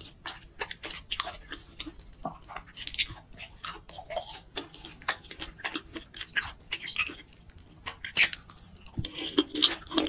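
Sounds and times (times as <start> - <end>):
person chewing: 0.0 - 10.0.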